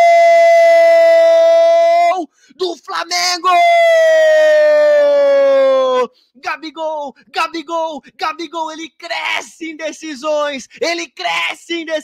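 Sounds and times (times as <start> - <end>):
commentator shouting goal: 1.8 - 4.0, 6.0 - 12.0.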